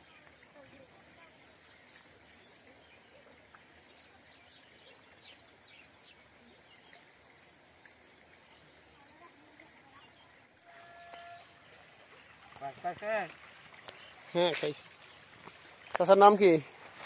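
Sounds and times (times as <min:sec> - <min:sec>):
faint outdoor background noise: 0:00.0 - 0:17.0.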